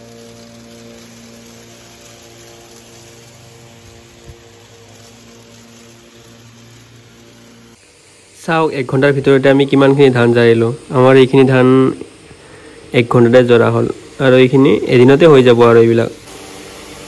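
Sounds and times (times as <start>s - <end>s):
electric motor humming: 0.0s - 17.0s.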